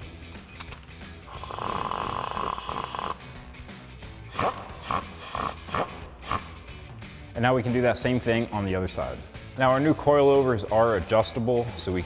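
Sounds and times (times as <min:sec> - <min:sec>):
cordless impact wrench: 0:04.3 - 0:06.5.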